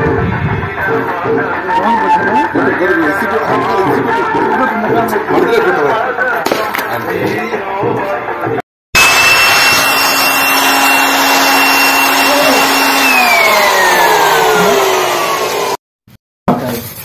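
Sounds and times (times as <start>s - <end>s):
machine whine winding down: 9.0s - 15.8s.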